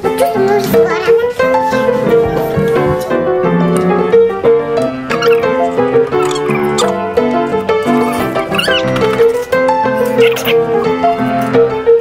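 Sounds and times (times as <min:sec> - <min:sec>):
keyboard music: 0:01.8 - 0:12.0
squeaky high-pitched chirps: 0:05.1 - 0:07.0, 0:07.8 - 0:09.3, 0:10.0 - 0:10.6.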